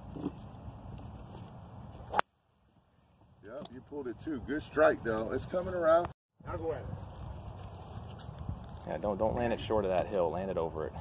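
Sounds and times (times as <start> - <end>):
wind buffeting microphone: 4.0 - 10.0.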